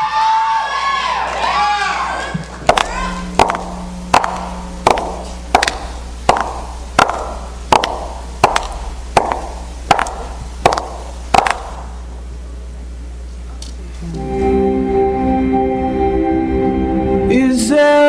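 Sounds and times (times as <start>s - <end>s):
high heels on stage floor: 2.4s - 12.0s.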